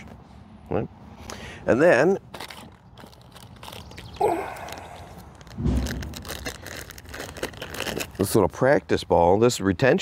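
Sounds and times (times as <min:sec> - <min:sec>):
dull thump: 0:05.6 - 0:06.2.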